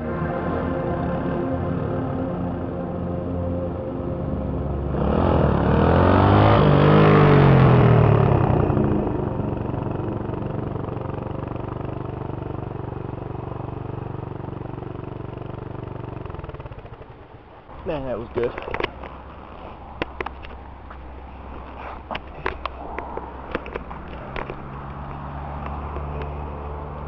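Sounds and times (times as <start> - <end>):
background music: 0.0 - 9.5
motorcycle passing by: 0.0 - 27.0.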